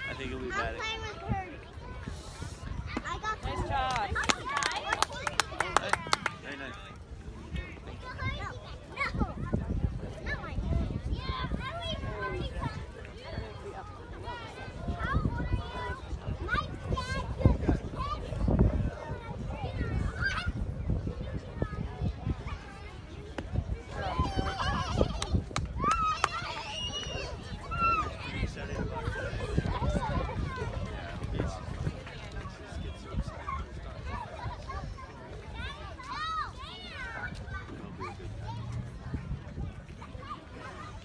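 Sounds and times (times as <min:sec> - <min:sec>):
children talking: 0:00.0 - 0:41.0
children shouting: 0:23.8 - 0:30.4.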